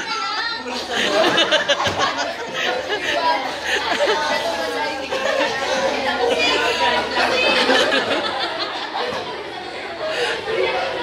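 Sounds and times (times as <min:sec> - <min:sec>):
students chattering: 0:00.0 - 0:11.0.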